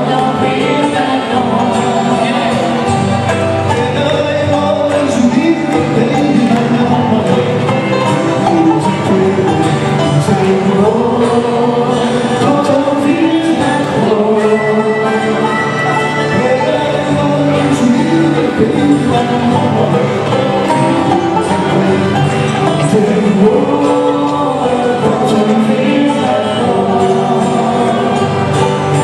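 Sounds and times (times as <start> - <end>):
bluegrass band playing: 0.0 - 29.0.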